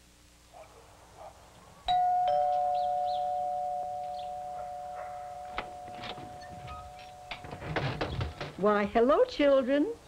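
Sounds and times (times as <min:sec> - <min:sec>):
two-tone doorbell chime: 0:01.9 - 0:07.8.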